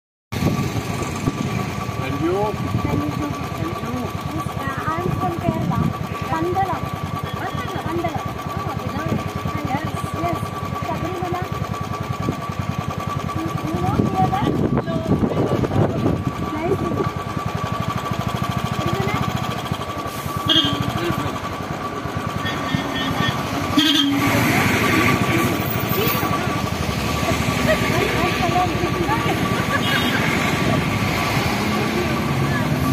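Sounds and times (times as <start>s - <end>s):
motorcycle engine idling: 0.4s - 32.9s
large vehicle passing: 14.0s - 32.9s.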